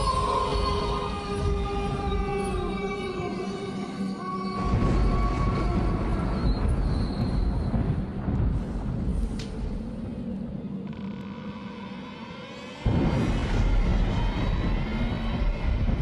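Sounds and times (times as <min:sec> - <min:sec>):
low dark rumbling drone: 0:04.3 - 0:16.0.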